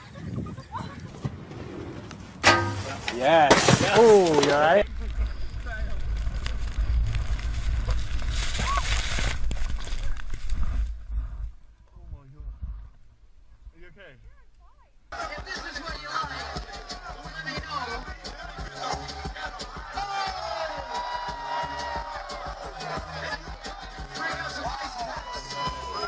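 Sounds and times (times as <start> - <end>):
low rumbling noise: 4.8 - 13.7.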